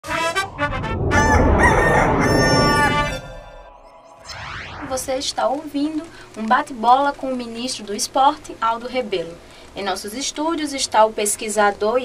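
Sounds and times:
rooster crowing: 0:01.0 - 0:03.8.

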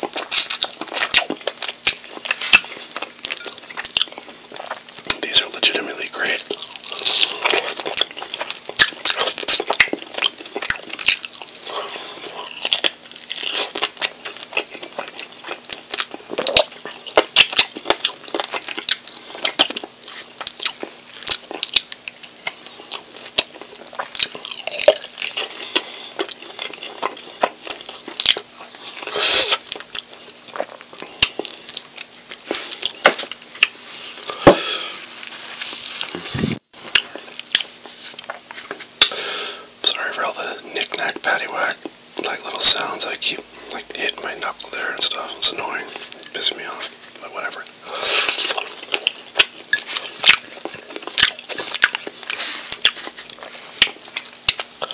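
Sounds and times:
chewing and biting wet mouth sounds: 0:00.0 - 0:34.6, 0:35.8 - 0:39.2, 0:39.8 - 0:54.9.

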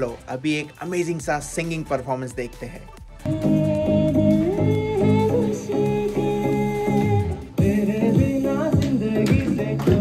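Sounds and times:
instrumental accompaniment: 0:00.0 - 0:10.0
woman singing into a microphone: 0:03.3 - 0:10.0.

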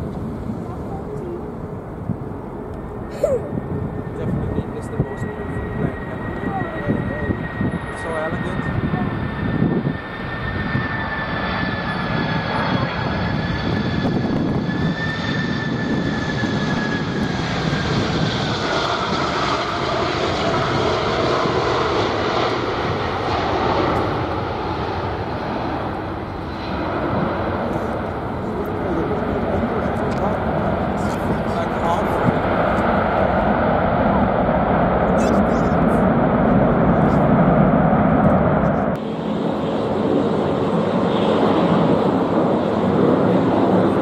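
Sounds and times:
jet engines whining: 0:00.0 - 0:44.0
rushing jet noise: 0:03.0 - 0:44.0.

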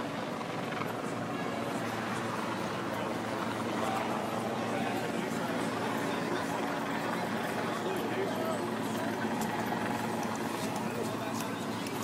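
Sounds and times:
indistinct crowd voices: 0:00.0 - 0:12.0
traffic hum: 0:00.0 - 0:12.0.

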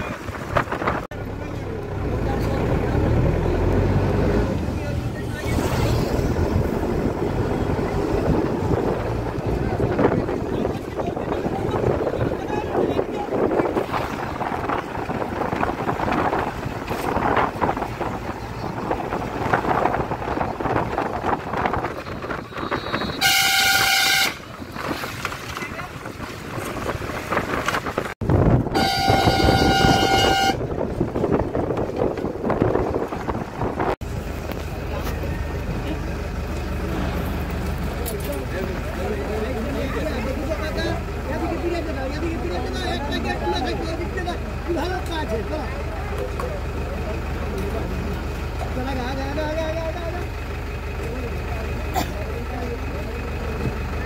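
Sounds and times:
wind rushing on microphone: 0:00.0 - 0:01.2, 0:05.0 - 0:34.6
vehicle horn: 0:22.4 - 0:24.6, 0:28.6 - 0:30.7.

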